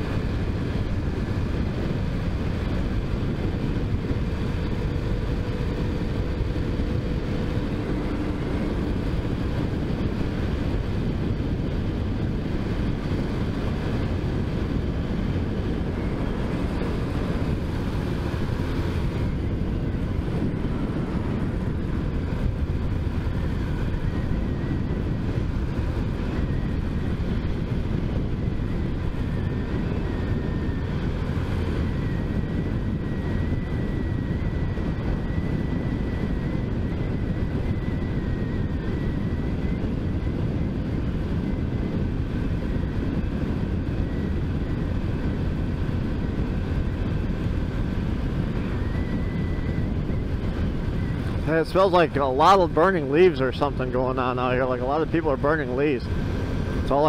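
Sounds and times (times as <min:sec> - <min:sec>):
small motorcycle running: 0:00.0 - 0:57.0
wind noise on microphone: 0:00.0 - 0:57.0
faint high whine: 0:42.7 - 0:57.0.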